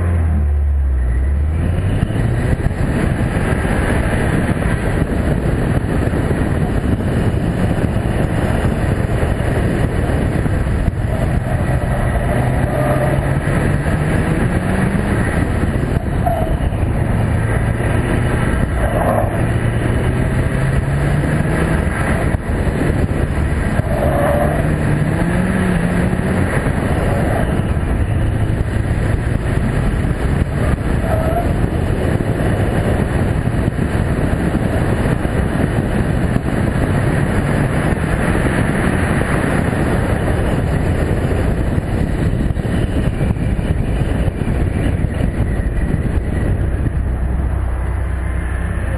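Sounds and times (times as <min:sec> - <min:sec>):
car engine revving: 0:00.0 - 0:48.9
wind and road noise: 0:00.0 - 0:48.9.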